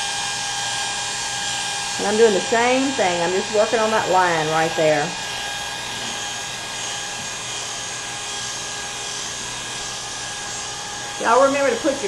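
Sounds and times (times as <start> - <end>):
electric hair clippers humming: 0.0 - 12.0.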